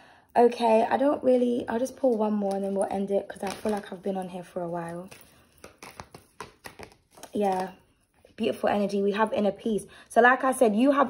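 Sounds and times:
cards being shuffled: 2.0 - 7.9.

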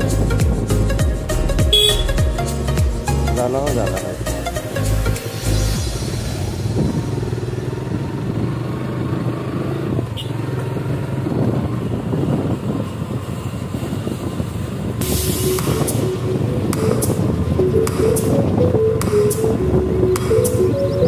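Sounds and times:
motorcycle engine cruising: 0.0 - 3.1, 4.5 - 21.0
road noise: 0.0 - 21.0.

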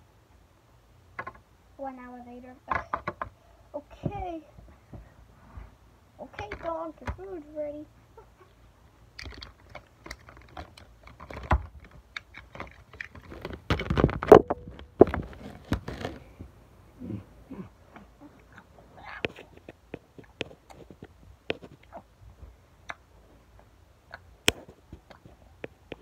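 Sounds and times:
toys clicking on plastic tray: 9.2 - 14.4.

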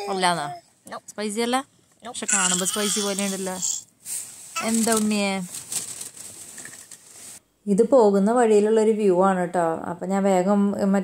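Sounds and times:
crackling and rustling of chips: 4.5 - 7.4.

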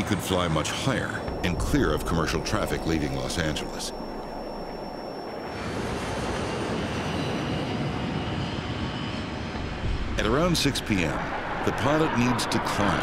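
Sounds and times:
high steady whine: 0.0 - 13.0
jet engine roar: 0.0 - 13.0.

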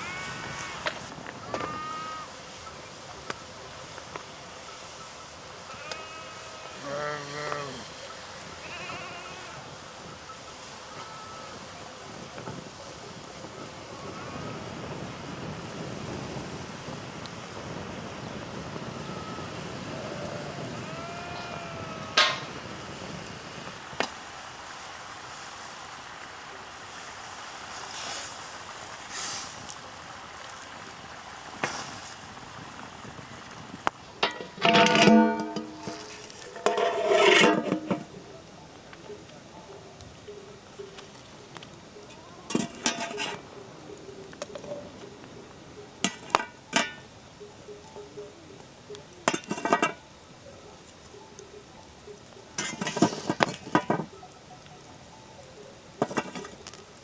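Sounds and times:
livestock bleating: 0.0 - 2.3, 5.7 - 7.9, 8.5 - 9.7, 10.8 - 11.8, 18.9 - 22.5
outdoor background noise: 0.0 - 57.0.

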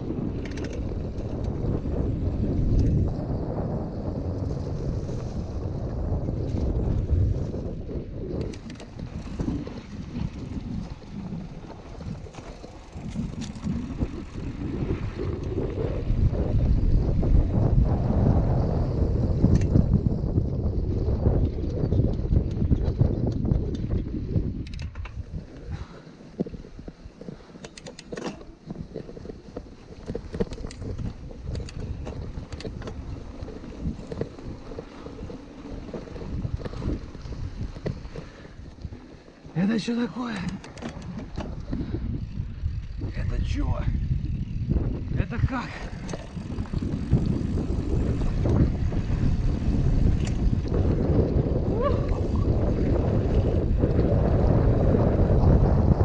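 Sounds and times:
bike clicks and rattles: 0.0 - 17.7, 18.3 - 56.0
bike tyres rolling on dirt: 0.0 - 56.0
wind on microphone: 0.0 - 56.0.

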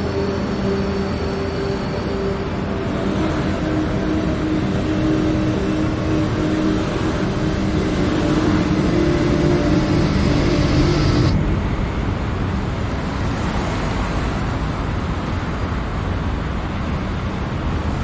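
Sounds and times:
car engine hum: 0.0 - 16.1
road noise hiss: 0.0 - 18.0.

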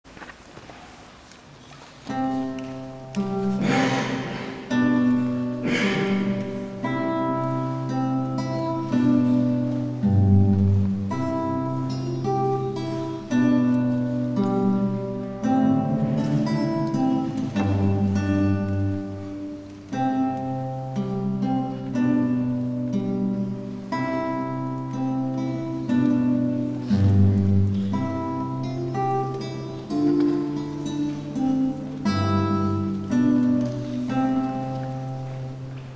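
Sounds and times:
fingerstyle classical guitar: 0.2 - 35.9.

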